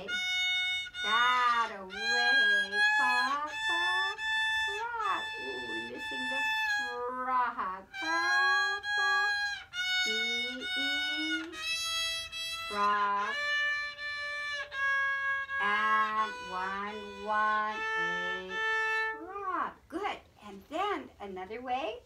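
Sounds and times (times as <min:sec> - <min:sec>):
violin bowed notes: 0:00.0 - 0:19.7.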